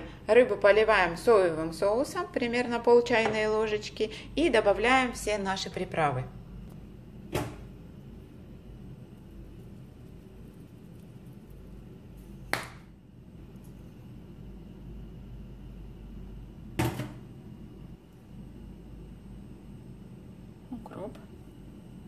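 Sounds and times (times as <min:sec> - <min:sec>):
low room hum: 0:00.0 - 0:22.0.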